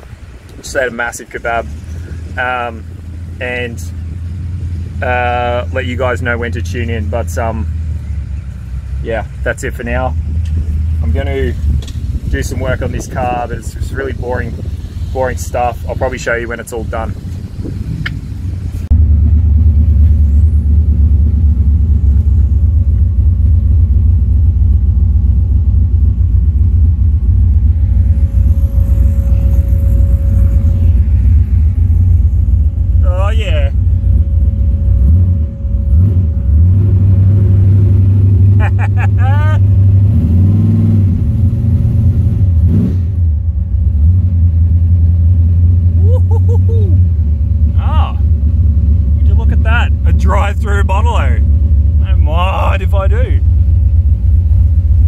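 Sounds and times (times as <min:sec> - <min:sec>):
car engine rumbling and revving: 0:00.0 - 0:55.0.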